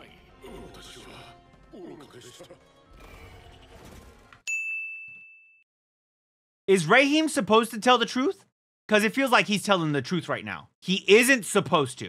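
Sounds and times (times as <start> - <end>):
anime soundtrack music: 0.0 - 4.4
bright bell-like ding: 4.5 - 5.6.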